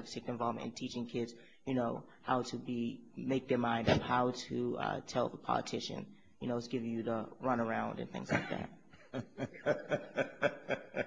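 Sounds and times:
person chuckling: 8.3 - 11.0.

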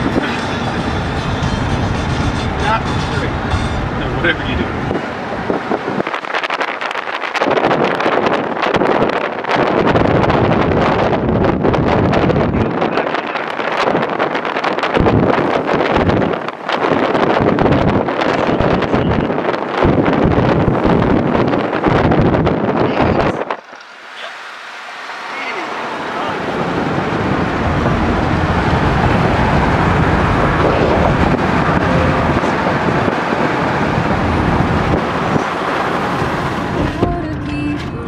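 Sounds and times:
road noise: 0.0 - 38.0
wind buffeting microphone: 0.0 - 38.0.

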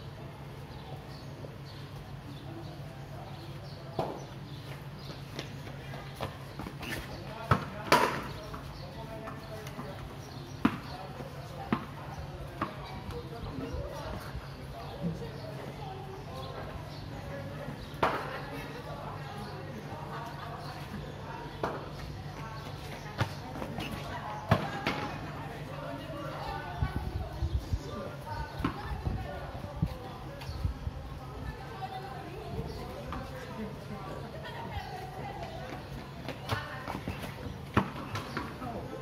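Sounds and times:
murmur of voices: 0.0 - 39.0.

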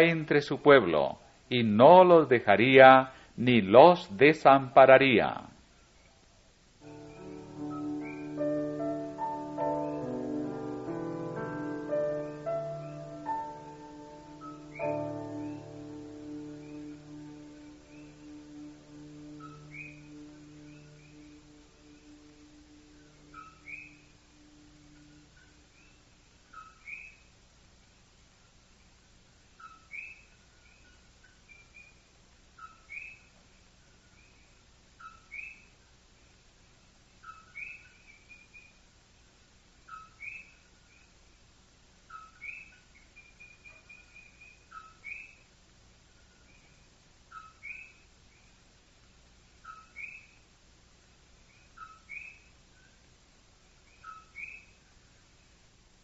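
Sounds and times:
bird calling: 6.8 - 27.2, 49.6 - 50.4, 53.9 - 54.8
bird chirps: 6.8 - 27.3, 29.6 - 32.0, 32.6 - 33.4, 34.1 - 35.8, 37.2 - 38.8, 39.8 - 41.2, 42.1 - 45.5, 46.2 - 48.6, 49.6 - 50.4, 51.5 - 53.0, 53.8 - 54.8.

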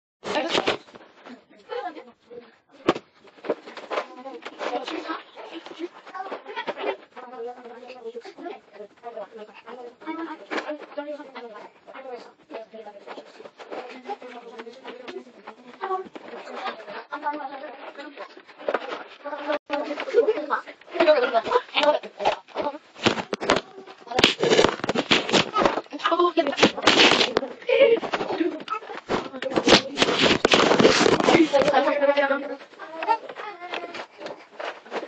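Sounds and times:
children talking: 3.8 - 24.4, 25.1 - 35.0
microphone handling rustles and knocks: 22.2 - 31.9.

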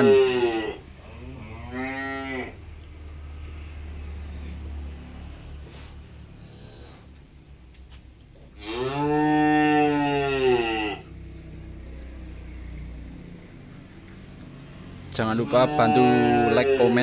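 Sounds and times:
cow mooing: 0.0 - 2.6, 8.6 - 11.2, 14.9 - 17.0.

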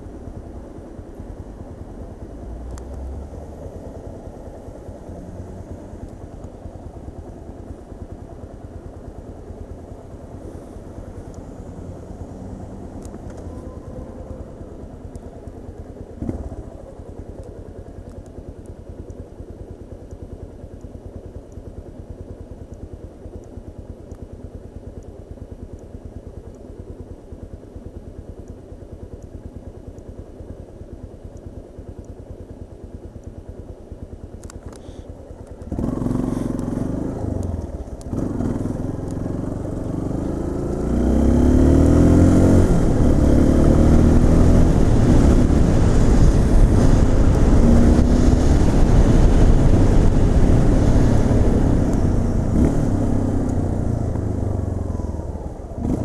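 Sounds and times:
motorcycle accelerating: 0.0 - 19.1, 34.0 - 56.0
motorcycle engine idling: 0.0 - 42.0, 48.6 - 56.0.

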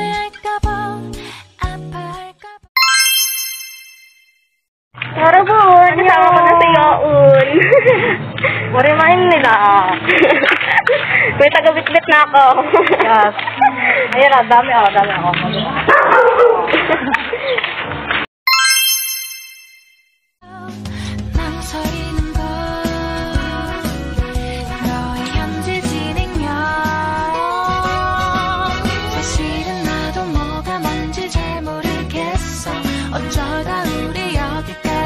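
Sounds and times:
bright chime: 2.8 - 4.4, 18.5 - 20.2
laughter: 7.4 - 8.3, 10.0 - 11.4, 12.6 - 14.2, 16.7 - 17.7
background music: 20.5 - 35.0.

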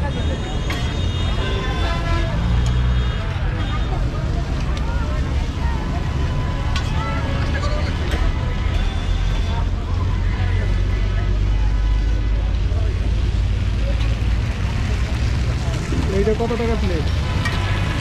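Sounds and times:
traffic engine rumble: 0.0 - 18.0
people talking: 3.2 - 17.4.

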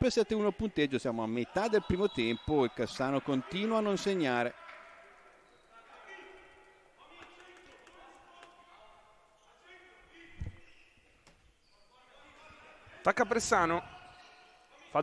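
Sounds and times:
players calling out: 1.4 - 5.8.

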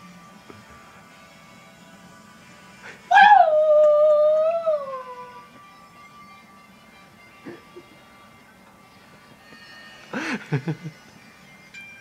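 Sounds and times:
man howling through hands: 3.1 - 5.5.

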